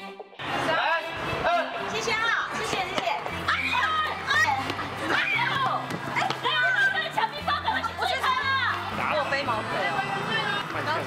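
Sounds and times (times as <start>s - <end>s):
excited high-pitched voices: 2.1s - 8.9s.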